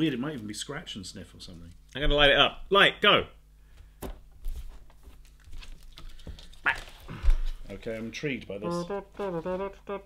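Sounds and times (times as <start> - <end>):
sticker sheet rustling and crinkling: 4.4 - 7.1.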